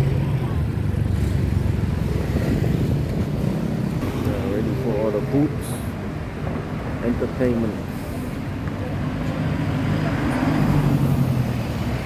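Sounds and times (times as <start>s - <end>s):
cars passing: 0.0s - 12.0s.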